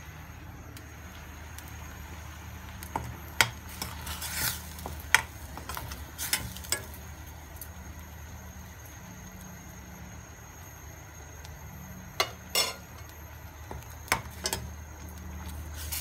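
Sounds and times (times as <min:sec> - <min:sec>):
steady low hum: 0:00.0 - 0:16.0
metal spoon clinking and scraping pan: 0:12.2 - 0:13.0.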